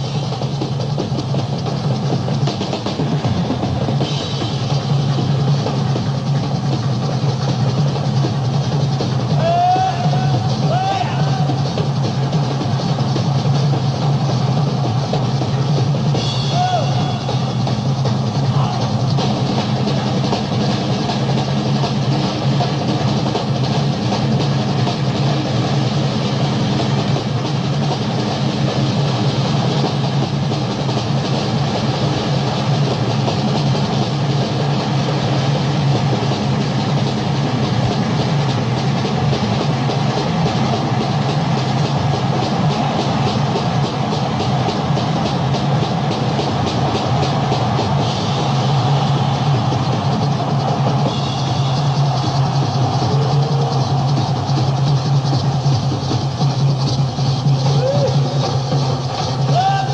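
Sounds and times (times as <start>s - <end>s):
drum beat: 0.0s - 59.9s
maracas shaking: 0.0s - 59.9s.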